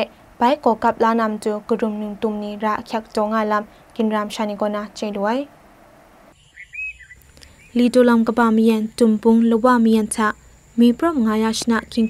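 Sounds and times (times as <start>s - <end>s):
faint bird chirps: 6.3s - 12.0s.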